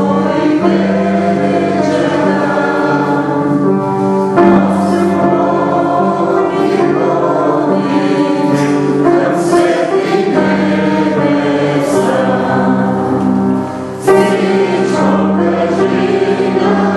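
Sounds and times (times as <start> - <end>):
choir singing long held notes: 0.0 - 16.9.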